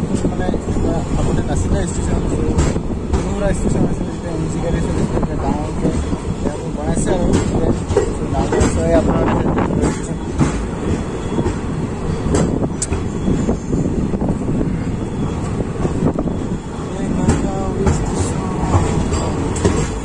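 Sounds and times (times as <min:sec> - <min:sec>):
wheels and coach clattering: 0:00.0 - 0:13.2, 0:13.9 - 0:20.0
train wheels rumbling on rails: 0:00.0 - 0:20.0.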